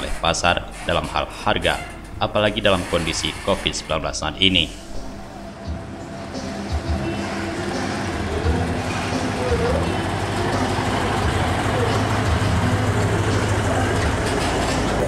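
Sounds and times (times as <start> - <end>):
truck diesel engine rumbling: 0.0 - 15.0.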